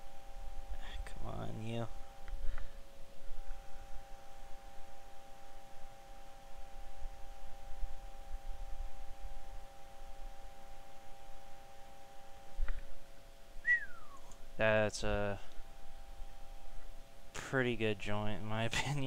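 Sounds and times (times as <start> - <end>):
steady high whine: 0.0 - 19.0
falling whistle-like squeak: 13.6 - 14.2.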